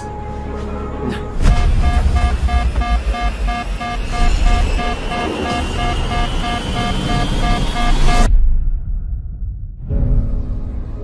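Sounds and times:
cockpit warning alarm beeping: 0:01.4 - 0:08.3
heavy low rumble: 0:01.4 - 0:09.9
thin high tone: 0:01.6 - 0:08.3.

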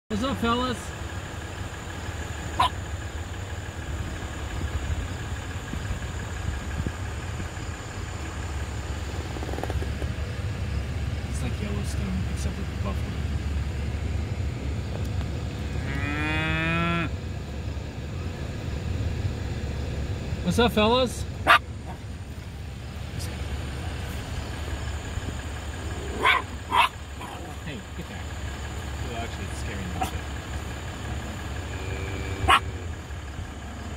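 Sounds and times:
vehicle engine idling: 0:00.1 - 0:33.9
small dog barking: 0:02.6 - 0:02.8, 0:21.4 - 0:22.0, 0:26.0 - 0:27.4, 0:30.0 - 0:30.2, 0:32.4 - 0:32.8.

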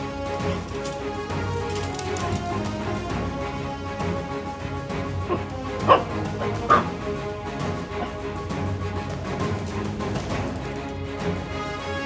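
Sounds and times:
background music: 0:00.0 - 0:12.0
small dog barking: 0:05.3 - 0:07.0.

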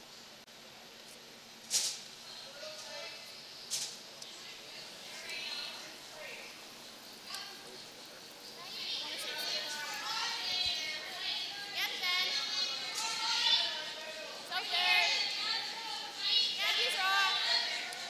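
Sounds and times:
women calling: 0:04.2 - 0:18.0.

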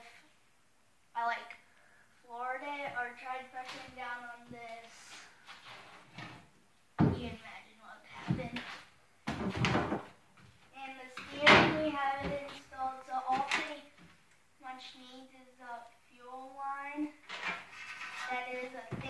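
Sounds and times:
person speaking: 0:02.2 - 0:05.3, 0:10.7 - 0:14.0, 0:18.2 - 0:19.0.

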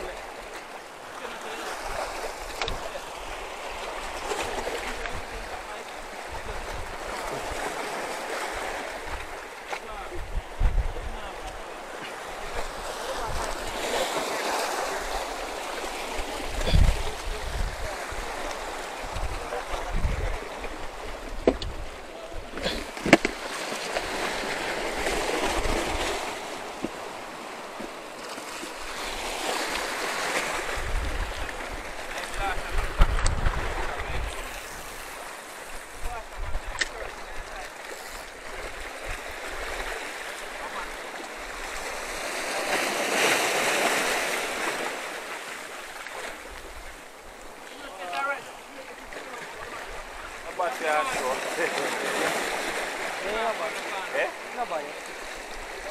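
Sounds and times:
surf washing over rocks: 0:00.0 - 0:55.9.

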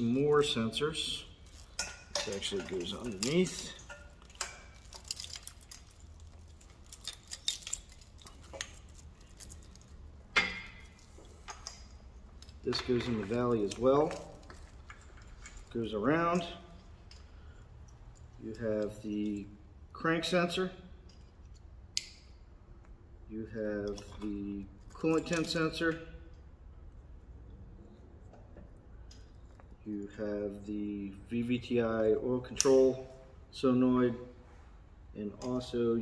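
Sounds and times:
plastic connectors clicking and rattling: 0:01.4 - 0:10.0.

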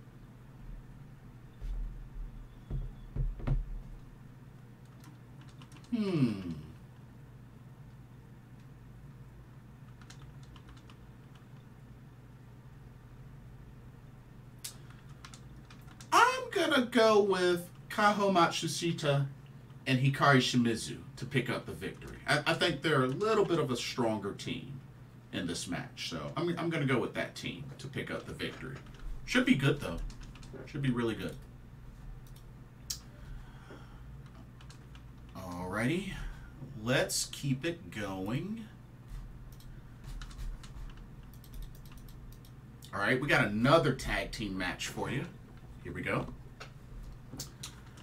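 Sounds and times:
low steady hum: 0:00.0 - 0:48.0
computer keyboard keystrokes: 0:04.8 - 0:05.9, 0:09.9 - 0:11.6, 0:14.7 - 0:16.1, 0:29.9 - 0:30.5, 0:34.2 - 0:35.4, 0:39.5 - 0:42.6.

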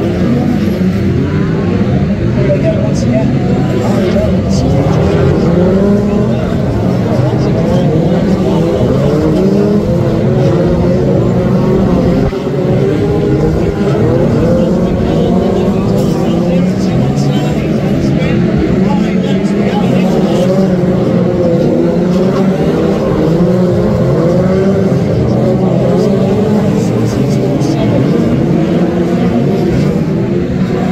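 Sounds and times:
race car engines revving: 0:00.0 - 0:30.9.

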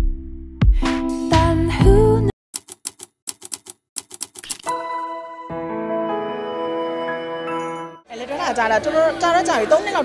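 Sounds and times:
typewriter keystroke clicks: 0:02.6 - 0:04.7
background music: 0:04.7 - 0:08.1.

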